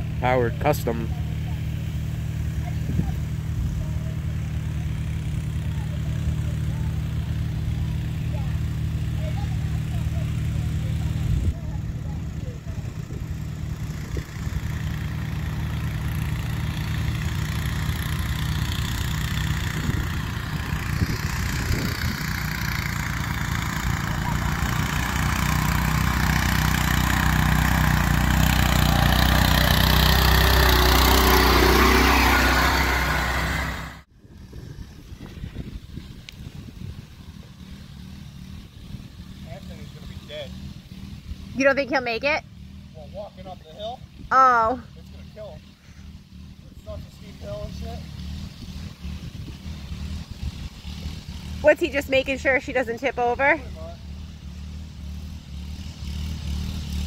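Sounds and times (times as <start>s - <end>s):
small mower engine running: 0.0s - 57.0s.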